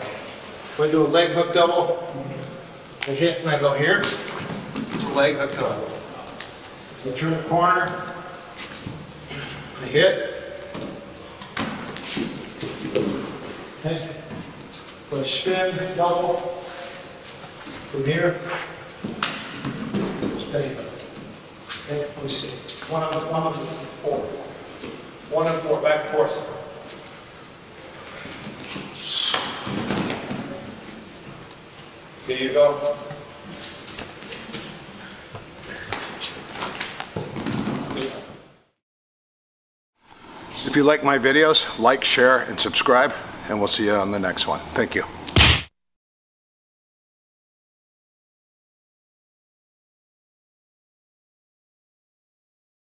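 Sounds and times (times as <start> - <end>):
bodies thudding on a mat: 45.4 - 45.7.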